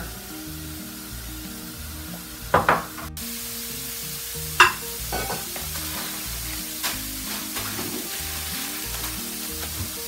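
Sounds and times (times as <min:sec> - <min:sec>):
background music: 0:00.0 - 0:10.0
meat sizzling in skillet: 0:00.0 - 0:10.0.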